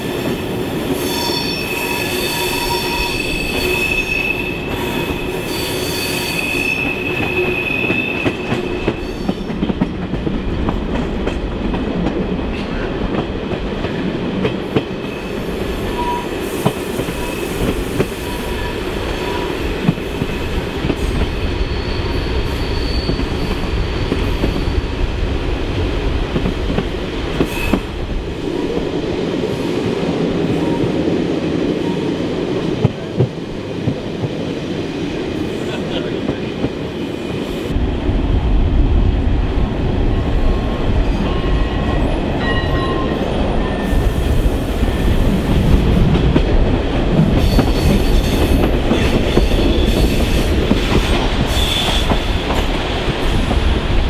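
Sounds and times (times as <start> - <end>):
train wheels squealing on rail: 0.0 - 9.6, 15.0 - 25.0, 27.4 - 27.9, 41.2 - 45.4, 47.4 - 52.8
train rumble: 0.0 - 54.0.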